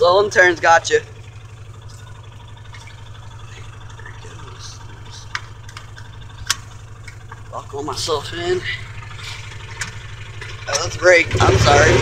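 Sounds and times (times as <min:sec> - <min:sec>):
small engine humming: 0:00.0 - 0:12.0.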